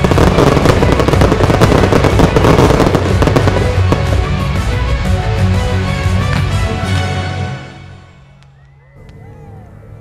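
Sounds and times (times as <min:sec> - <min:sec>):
firework cracks and bangs: 0:00.0 - 0:04.7
loud music: 0:00.0 - 0:08.4.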